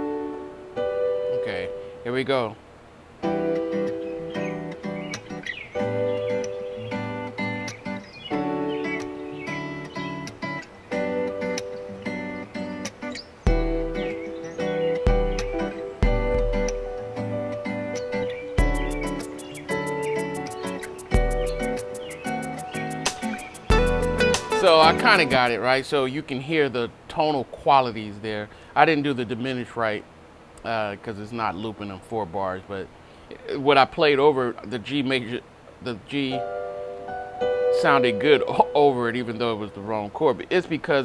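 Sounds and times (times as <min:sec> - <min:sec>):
electronic keyboard chords: 0:00.0 - 0:02.4, 0:03.2 - 0:25.6, 0:36.3 - 0:40.2
backing track: 0:03.2 - 0:25.6
deep bass hits: 0:13.5 - 0:14.2, 0:15.1 - 0:17.0
fast even ticking pattern: 0:18.6 - 0:25.6.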